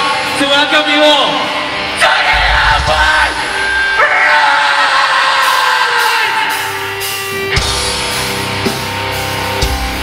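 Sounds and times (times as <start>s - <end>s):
deep bass rumble: 2.3s - 4.0s.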